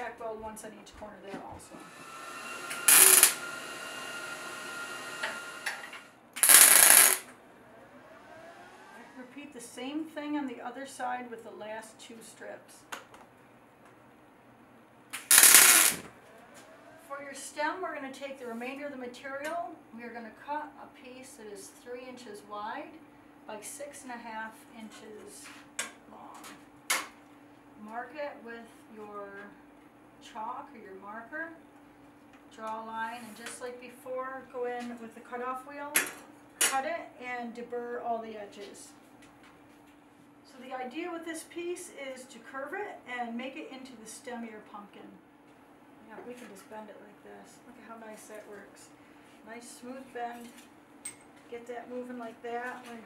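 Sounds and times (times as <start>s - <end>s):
welding arc noise: 1.8s - 7.3s, 15.1s - 16.2s.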